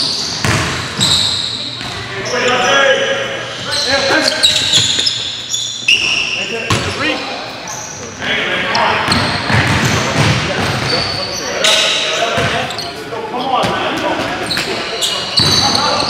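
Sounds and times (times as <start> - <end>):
sneakers squeaking on hardwood: 0.0 - 2.8, 3.4 - 16.0
basketball bouncing: 0.3 - 1.1, 9.1 - 10.9
players' voices: 0.5 - 16.0.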